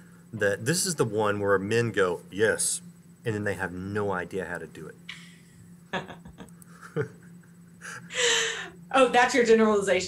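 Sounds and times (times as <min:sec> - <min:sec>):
faint steady hum: 0:00.0 - 0:10.0
woman laughing softly: 0:05.9 - 0:08.7.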